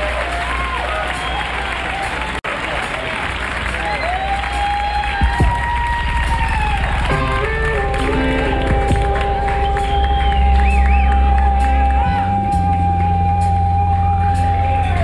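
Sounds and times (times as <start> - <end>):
audience applauding and cheering: 0.0 - 15.0
held keyboard chords: 5.2 - 15.0.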